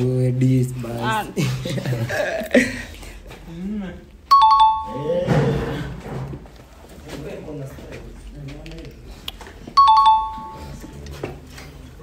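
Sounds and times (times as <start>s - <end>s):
ding-dong chime: 4.3s - 5.2s, 9.8s - 10.8s.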